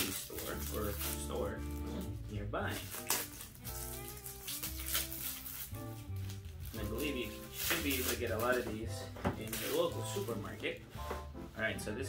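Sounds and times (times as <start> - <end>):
plastic wrapping crackling: 0.0 - 10.8
soft background music: 0.0 - 12.0.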